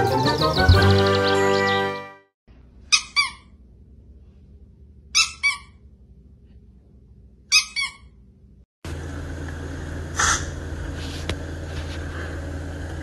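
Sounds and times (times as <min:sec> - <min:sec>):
small dog yipping: 0:02.9 - 0:03.6, 0:05.1 - 0:05.8, 0:07.5 - 0:08.1.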